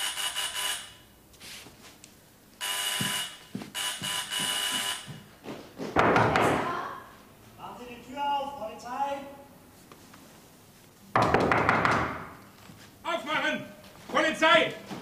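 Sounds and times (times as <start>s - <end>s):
electric doorbell buzzing: 0.0s - 1.1s, 2.6s - 5.2s.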